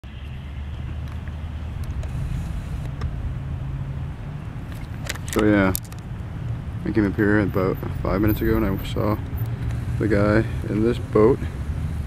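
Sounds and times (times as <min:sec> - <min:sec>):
outboard motors humming: 0:00.2 - 0:12.0.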